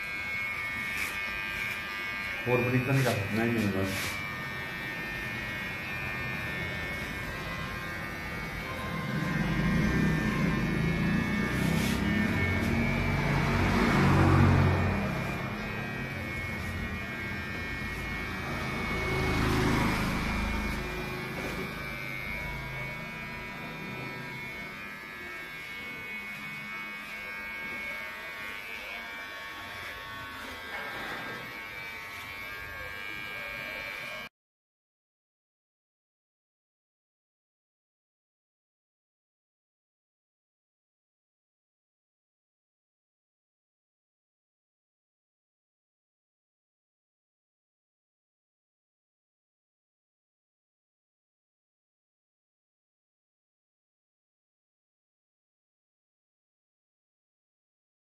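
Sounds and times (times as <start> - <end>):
electric hair clipper buzzing: 0.0 - 34.3.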